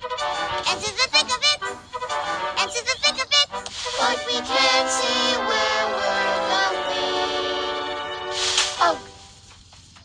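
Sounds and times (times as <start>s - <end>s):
backing music: 0.0s - 9.7s
cartoon characters singing: 0.4s - 8.1s.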